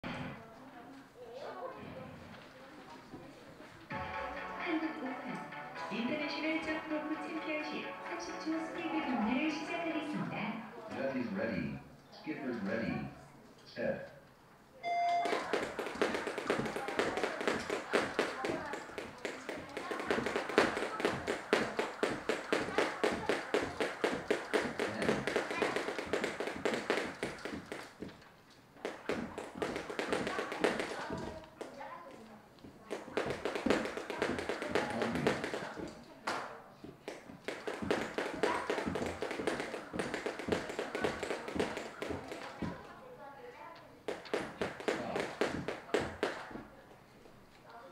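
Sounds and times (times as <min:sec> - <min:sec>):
jump ropes slapping floor: 0:15.2 - 0:42.9, 0:44.1 - 0:46.8.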